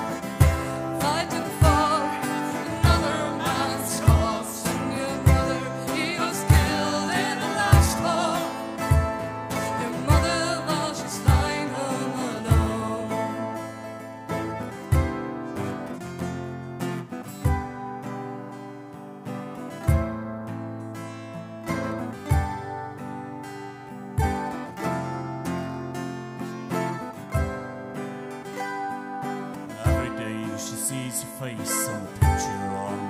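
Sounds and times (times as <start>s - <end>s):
strummed acoustic guitar: 0.0s - 33.0s.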